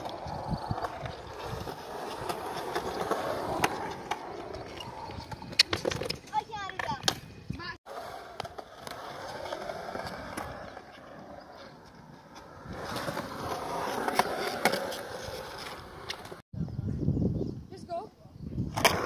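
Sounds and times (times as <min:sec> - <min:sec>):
skateboard wheels rolling on concrete: 0:00.0 - 0:16.5, 0:18.6 - 0:19.0.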